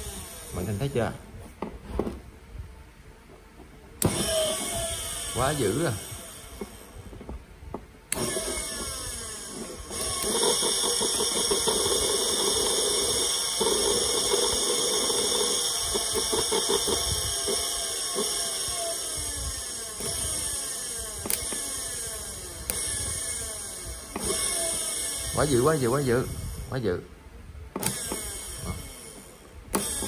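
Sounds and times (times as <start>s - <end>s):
electric motor whining: 0.0s - 2.3s, 3.9s - 30.0s
sharp clicks: 21.2s - 21.7s.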